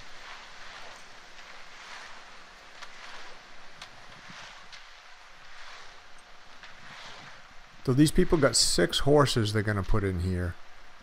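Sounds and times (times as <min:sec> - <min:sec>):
wind-like hiss: 0:00.0 - 0:11.0.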